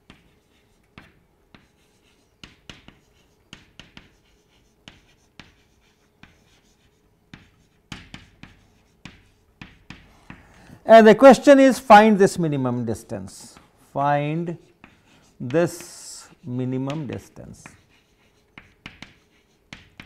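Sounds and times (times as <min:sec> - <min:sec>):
chalk writing on chalkboard: 0:00.0 - 0:10.5, 0:14.3 - 0:20.0.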